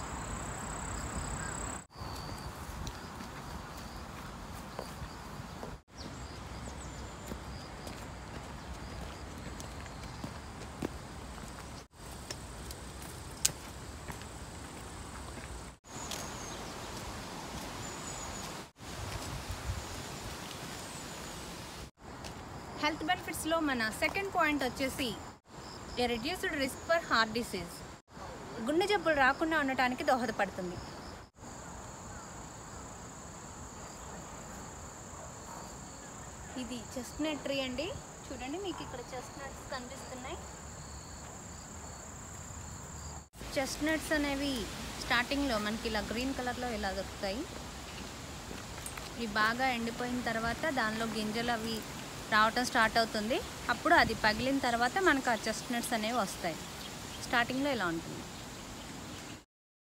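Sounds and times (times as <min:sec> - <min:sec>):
outdoor background hiss: 0:00.0 - 0:59.4
footsteps on dirt trail: 0:01.9 - 0:21.0, 0:47.5 - 0:49.6
woman's voice: 0:22.8 - 0:25.3, 0:26.0 - 0:27.8, 0:28.6 - 0:30.8, 0:36.5 - 0:40.5, 0:43.5 - 0:47.5, 0:49.2 - 0:56.6, 0:57.2 - 0:58.3
high-pitched insect chorus: 0:30.8 - 0:43.5.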